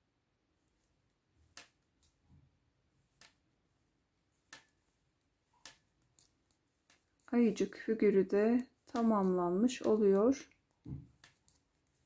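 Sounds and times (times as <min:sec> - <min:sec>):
knitting needles clicking: 0:00.7 - 0:12.0.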